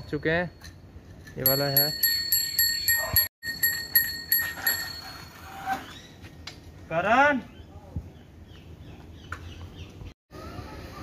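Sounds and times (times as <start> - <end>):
bicycle bell ringing rapidly: 1.4 - 5.4.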